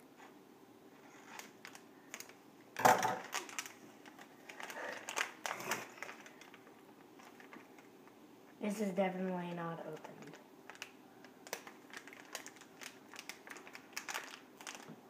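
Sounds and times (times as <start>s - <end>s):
foil packet crinkling: 1.1s - 8.0s, 9.1s - 15.0s.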